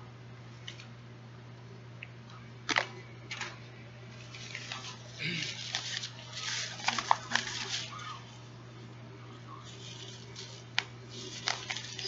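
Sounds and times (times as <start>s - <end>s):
low steady hum: 0.0s - 12.0s
item rustling: 2.7s - 8.5s, 9.5s - 12.0s.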